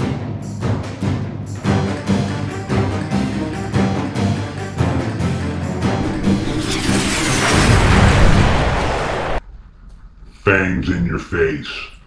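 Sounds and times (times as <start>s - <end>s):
rush and boom: 5.9s - 9.6s.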